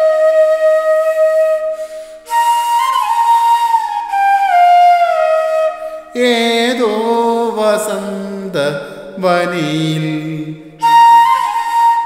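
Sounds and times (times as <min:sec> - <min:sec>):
man singing unaccompanied: 0:06.2 - 0:11.0.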